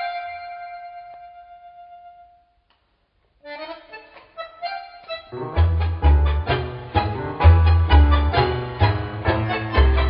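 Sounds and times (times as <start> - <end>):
tango orchestra playing: 3.6 - 10.0.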